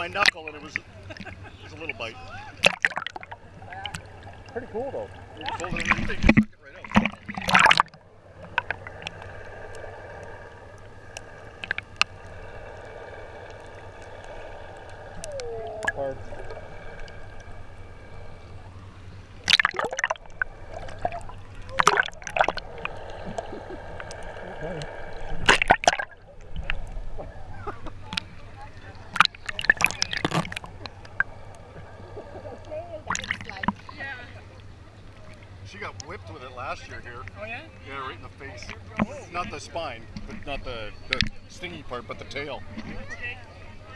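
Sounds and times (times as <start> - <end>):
faint steady tones: 0.0 - 43.9
underwater low hum: 0.0 - 43.9
water splashing and sloshing: 0.0 - 43.9
short wavering warble: 14.5 - 18.6.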